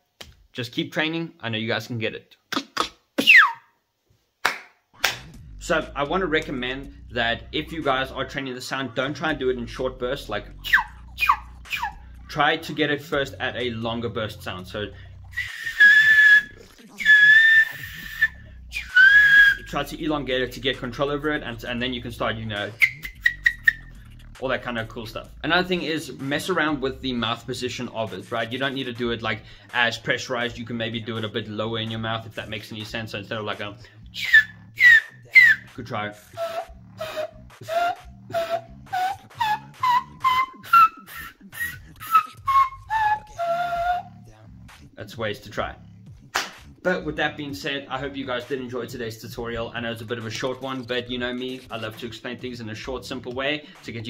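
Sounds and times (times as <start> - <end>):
breathy high whistle: 3.2 - 3.8, 10.6 - 12.1, 15.3 - 19.7, 22.7 - 24.0, 34.2 - 35.7, 36.3 - 44.1.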